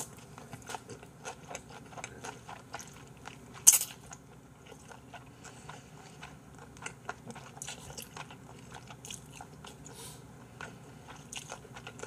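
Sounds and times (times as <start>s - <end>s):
wet chewing with mouth clicks: 0.0s - 12.0s.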